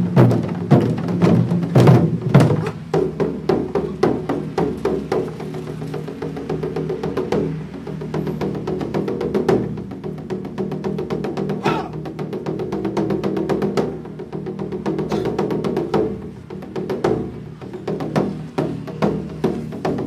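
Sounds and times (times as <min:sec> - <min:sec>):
barrel drum ensemble playing: 0:00.0 - 0:20.0.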